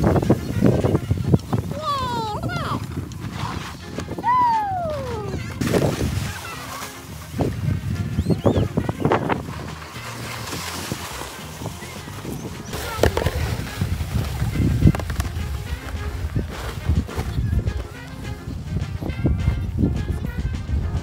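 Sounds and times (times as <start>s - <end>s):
background music with bass line: 0.0s - 21.0s.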